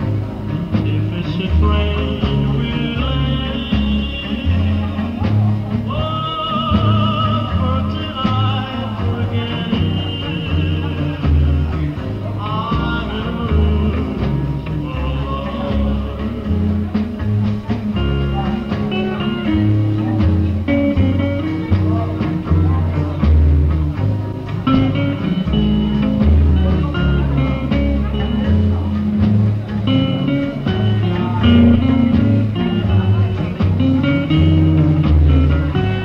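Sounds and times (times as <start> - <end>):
bass line: 0.0 - 36.0
drums: 0.0 - 36.0
electric guitar melody: 0.0 - 36.0.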